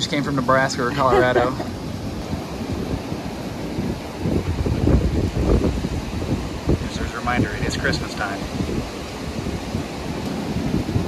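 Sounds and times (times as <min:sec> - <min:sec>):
gusty wind buffeting microphone: 0:00.0 - 0:11.0.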